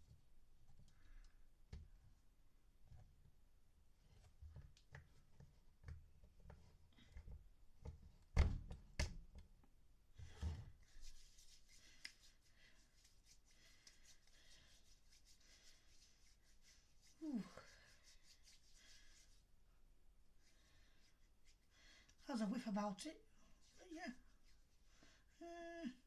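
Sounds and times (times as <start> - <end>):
palms rubbing together: 10.8 - 19.5, 20.4 - 22.2, 23.5 - 25.1.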